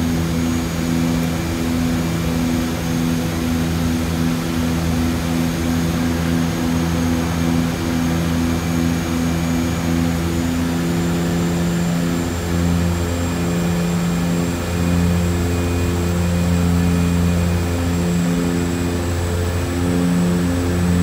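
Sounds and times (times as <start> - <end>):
high turbine whine: 0.0 - 21.0
propeller plane low drone: 0.0 - 21.0.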